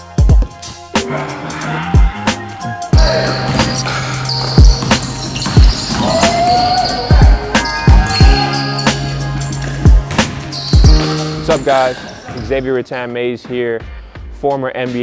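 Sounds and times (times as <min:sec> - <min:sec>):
background music with bass: 0:00.0 - 0:15.0
basketball bouncing on wooden floor: 0:04.4 - 0:08.4, 0:09.6 - 0:11.5.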